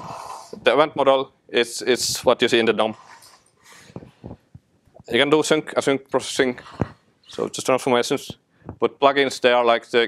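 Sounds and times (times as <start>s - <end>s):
soft breath: 3.0s - 4.6s.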